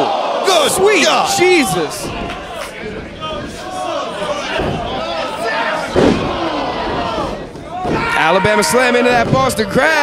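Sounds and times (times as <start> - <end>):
crowd shouting: 0.0 - 10.0
body slammed onto ring canvas: 5.9 - 8.2.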